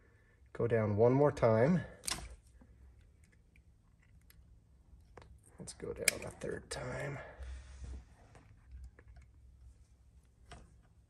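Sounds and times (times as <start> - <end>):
low room hum: 0.0 - 11.0
wire stripper clicks: 2.0 - 2.4, 6.0 - 6.4.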